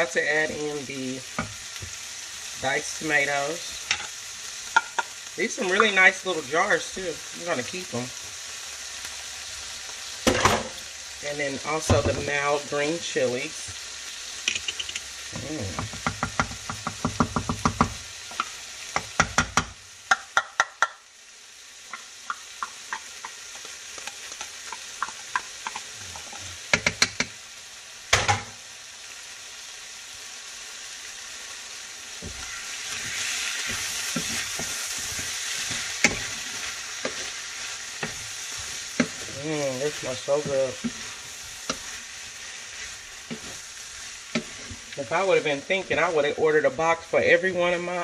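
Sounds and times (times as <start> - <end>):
food sizzling in a skillet: 0.0 - 48.0.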